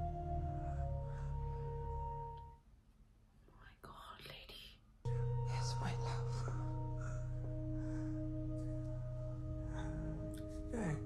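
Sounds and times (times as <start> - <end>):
low sustained score drone: 0.0 - 2.5, 5.1 - 11.0
man whispering: 3.6 - 4.8, 9.7 - 11.0.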